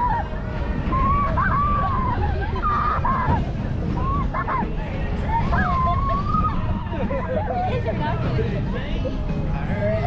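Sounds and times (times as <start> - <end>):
ride trailer rumbling: 0.0 - 10.0.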